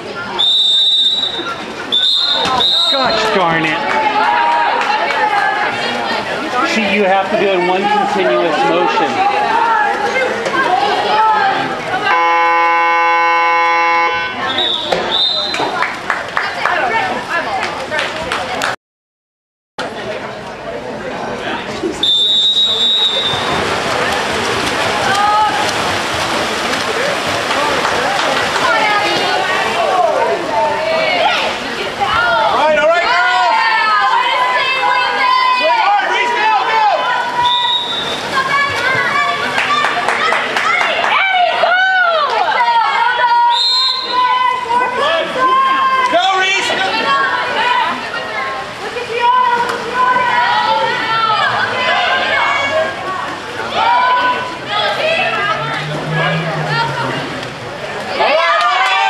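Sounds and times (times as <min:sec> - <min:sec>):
referee's whistle blast: 0:00.4 - 0:03.2, 0:12.2 - 0:15.7, 0:22.0 - 0:23.5, 0:37.4 - 0:38.2, 0:43.5 - 0:44.2
shouting voices: 0:22.0 - 0:59.0
water splashing: 0:22.0 - 0:59.0.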